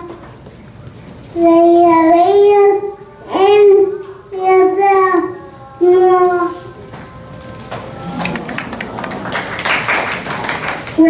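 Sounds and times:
girl singing into microphone: 0:01.3 - 0:08.1.

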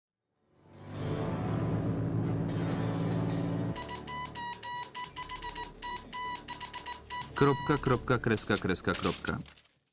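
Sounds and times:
steady low drone: 0:00.6 - 0:04.1
morse code beeps: 0:03.8 - 0:08.1.

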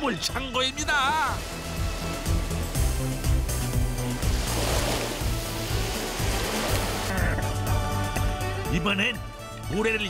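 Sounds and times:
background music with bass: 0:00.0 - 0:10.0
water splashing and rushing: 0:00.5 - 0:08.3.

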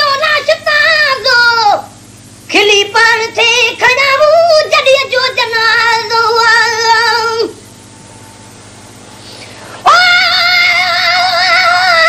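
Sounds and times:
person singing unaccompanied: 0:00.0 - 0:07.6, 0:09.8 - 0:12.0
faint steady hum: 0:00.0 - 0:12.0.

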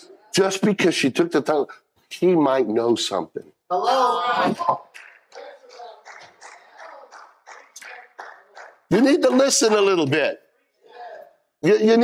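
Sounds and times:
people clapping: 0:04.4 - 0:10.3.

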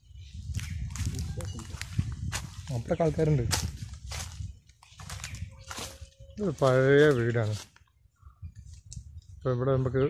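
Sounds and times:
man speaking: 0:06.4 - 0:07.6.

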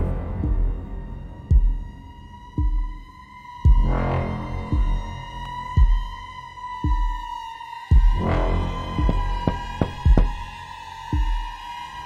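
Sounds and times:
deep heartbeat-like thump: 0:00.3 - 0:04.0, 0:04.6 - 0:06.2, 0:06.8 - 0:08.2, 0:08.9 - 0:10.5, 0:11.1 - 0:11.6.

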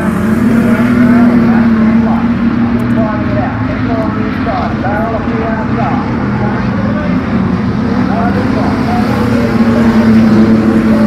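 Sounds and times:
race car engines droning: 0:00.0 - 0:11.0.

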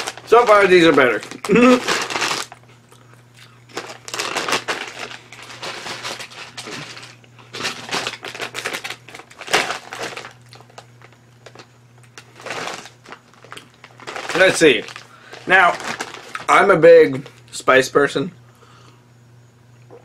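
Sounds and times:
potato chips crunching: 0:00.0 - 0:17.5
foil chip bag crinkling: 0:00.0 - 0:17.6.

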